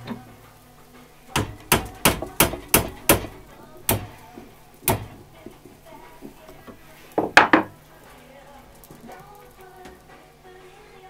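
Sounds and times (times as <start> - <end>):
small hammer striking metal: 1.4 - 4.2, 4.8 - 5.2.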